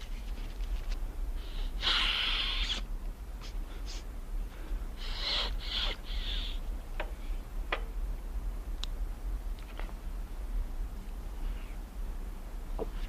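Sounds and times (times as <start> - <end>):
man sniffing hard: 1.4 - 2.8.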